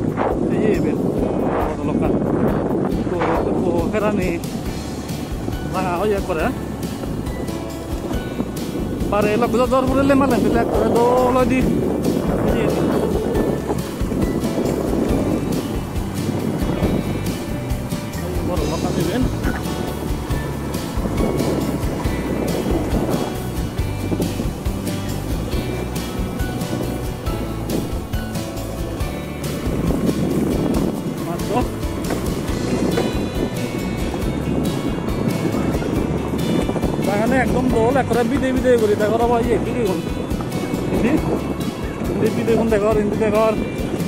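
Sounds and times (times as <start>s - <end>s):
music playing: 0.0s - 44.0s
vehicle rumbling on dirt road: 0.0s - 44.0s
wind rushing over microphone: 0.0s - 44.0s.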